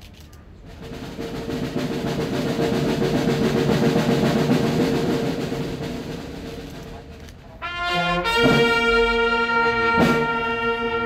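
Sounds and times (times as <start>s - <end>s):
drum roll: 0.6s - 11.0s.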